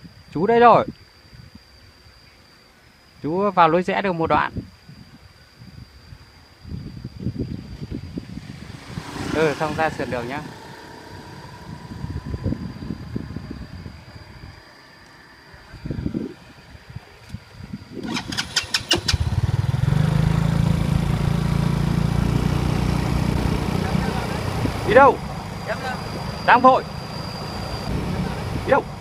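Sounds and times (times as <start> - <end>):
motorcycle engine running: 8.1 - 14.3, 18.0 - 29.0.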